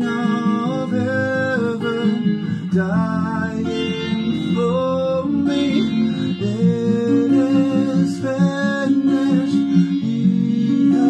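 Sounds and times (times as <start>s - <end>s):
acoustic guitar: 0.0s - 11.0s
person singing slow melody: 0.0s - 11.0s.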